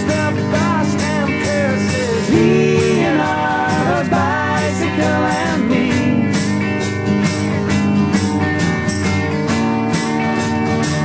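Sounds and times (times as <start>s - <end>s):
person singing: 0.0s - 6.5s
strummed acoustic guitar: 0.0s - 11.0s.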